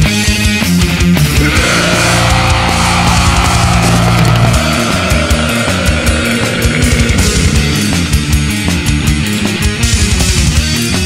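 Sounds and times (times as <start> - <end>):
distorted electric guitars: 0.0 - 11.0
drums: 0.0 - 11.0.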